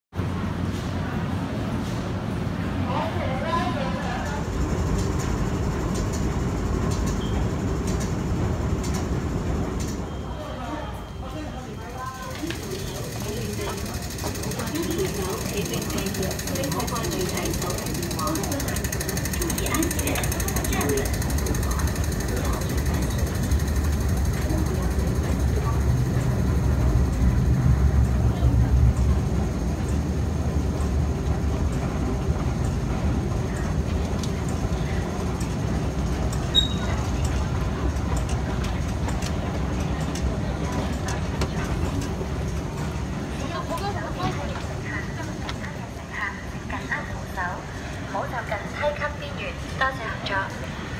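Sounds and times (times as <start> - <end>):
low rumble and hum of machinery: 0.2 - 50.9
indistinct voices: 9.8 - 30.6.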